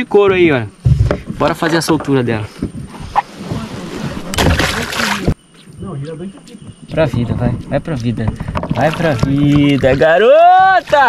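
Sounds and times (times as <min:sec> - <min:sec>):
water splashing and sloshing: 0:02.7 - 0:05.4, 0:07.0 - 0:11.0.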